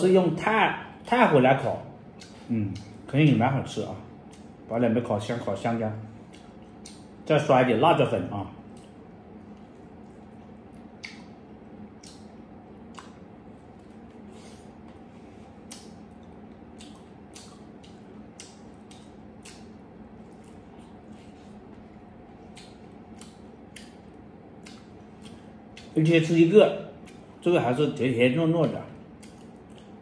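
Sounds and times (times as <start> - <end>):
faint steady hum: 0.0 - 30.0
man chewing corn: 2.1 - 3.1, 4.2 - 4.7, 6.1 - 7.3, 8.6 - 26.0, 27.0 - 27.4, 29.0 - 30.0
wet sticky mouth clicks: 2.2 - 3.0, 4.2 - 4.6, 6.3 - 7.1, 8.7 - 13.3, 15.6 - 21.4, 22.4 - 26.0, 27.0 - 27.2, 29.2 - 30.0.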